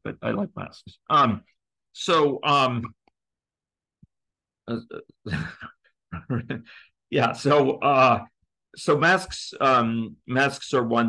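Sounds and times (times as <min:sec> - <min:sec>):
man chuckling: 0:05.3 - 0:06.8.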